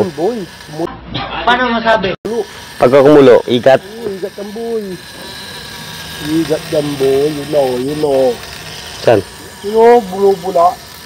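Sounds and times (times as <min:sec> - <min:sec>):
steady background noise: 0:00.0 - 0:11.0.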